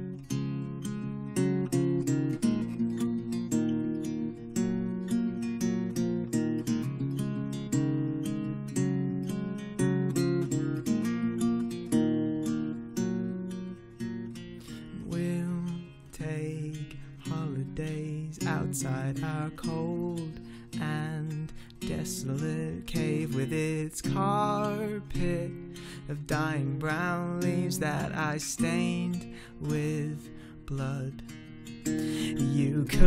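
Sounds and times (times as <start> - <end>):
acoustic guitar picking and strumming: 0.0 - 33.0.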